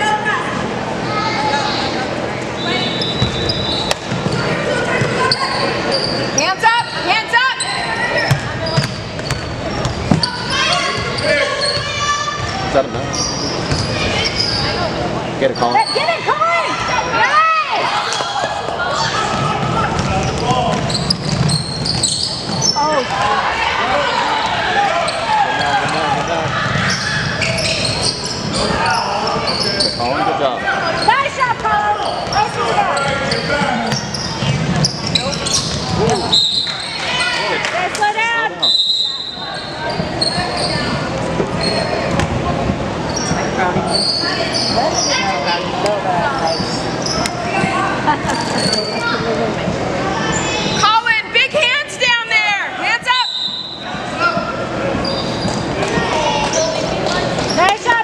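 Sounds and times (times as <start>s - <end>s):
shouting and chatter: 0.0s - 58.0s
sneakers squeaking: 1.5s - 52.2s, 52.8s - 58.0s
basketball bouncing: 8.3s - 10.4s, 13.6s - 14.0s, 19.3s - 22.7s.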